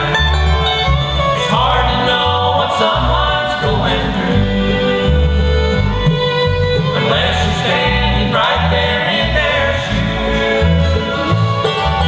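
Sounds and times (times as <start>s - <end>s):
acoustic guitar: 0.0s - 12.0s
banjo: 0.0s - 12.0s
fiddle sliding melody: 0.0s - 12.0s
mandolin: 0.0s - 12.0s
upright bass notes: 0.0s - 12.0s.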